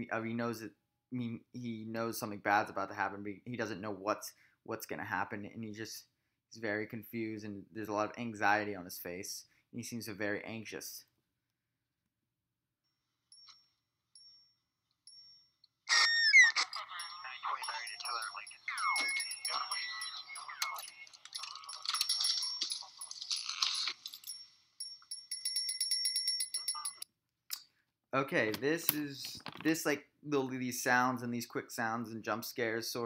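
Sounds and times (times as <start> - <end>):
high sound effects with chirps: 15.9 - 21.7
thin-sounding voices: 15.9 - 23.9.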